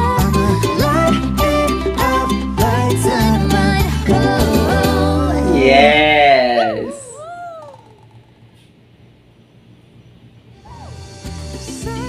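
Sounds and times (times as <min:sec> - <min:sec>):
faint background hum: 0:00.0 - 0:12.0
person singing a gliding note: 0:04.1 - 0:07.2.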